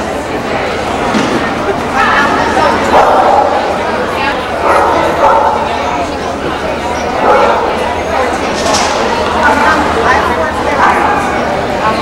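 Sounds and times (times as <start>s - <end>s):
crowd chatter: 0.0s - 12.0s
dog barking: 4.6s - 5.7s, 7.2s - 7.8s.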